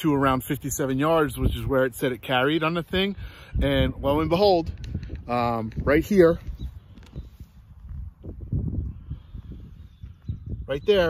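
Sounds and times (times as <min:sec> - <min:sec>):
wind rumble on microphone: 0:00.0 - 0:11.0
microphone handling noise: 0:03.8 - 0:10.7.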